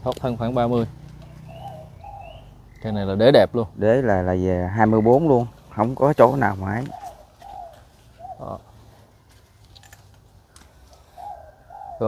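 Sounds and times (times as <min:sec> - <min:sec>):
bird calling faintly: 0:00.0 - 0:03.3, 0:04.7 - 0:12.0.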